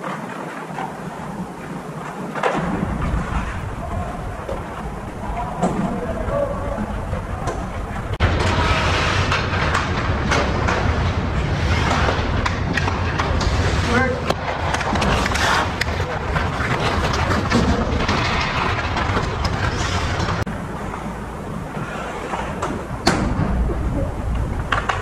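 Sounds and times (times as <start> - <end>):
skates scraping ice: 0.0 - 25.0
sticks and puck clacking: 0.0 - 25.0
players calling out: 3.3 - 8.2.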